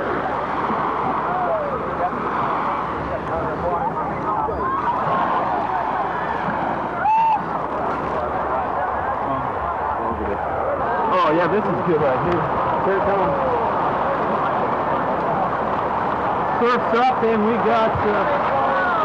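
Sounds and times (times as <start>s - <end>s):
surf rushing: 0.0s - 19.0s
people calling out: 4.1s - 7.7s, 18.2s - 19.0s
loud shout: 7.0s - 7.5s.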